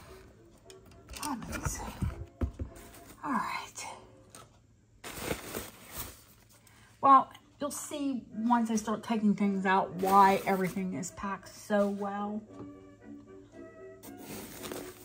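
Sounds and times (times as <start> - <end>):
packing paper rustling in a box: 2.8 - 3.4, 5.0 - 6.6, 10.0 - 10.9, 14.0 - 15.0.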